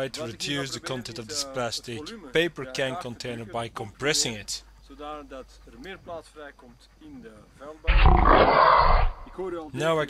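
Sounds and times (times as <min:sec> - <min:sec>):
voice: 0:00.0 - 0:08.1
loud roar: 0:07.9 - 0:09.4.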